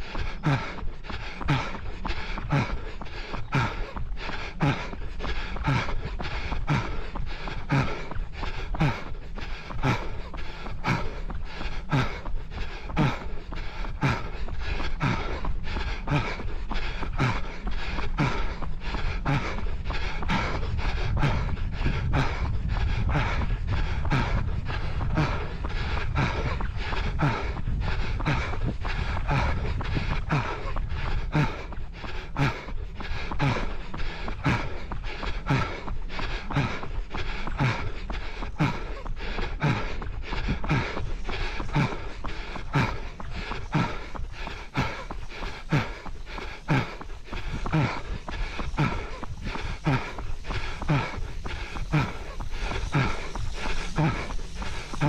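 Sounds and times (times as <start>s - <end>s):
heavy panting breaths: 0.0s - 55.0s
running footsteps: 0.0s - 55.0s
low rumble: 15.0s - 33.8s.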